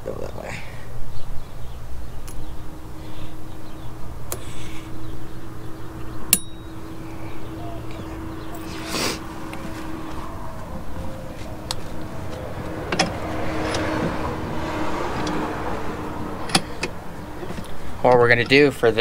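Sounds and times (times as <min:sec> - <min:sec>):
steady low hum: 0:00.0 - 0:19.0
metal clicks and knocks: 0:12.8 - 0:14.2.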